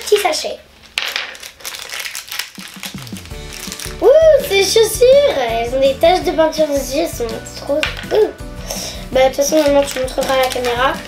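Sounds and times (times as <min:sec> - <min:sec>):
plastic packet crinkling: 0:00.0 - 0:04.0, 0:09.3 - 0:11.0.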